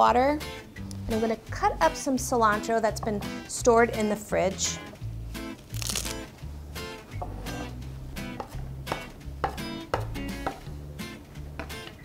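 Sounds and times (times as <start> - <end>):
music with bass and guitar: 0.0 - 12.0
knife chopping on wooden board: 8.4 - 10.7.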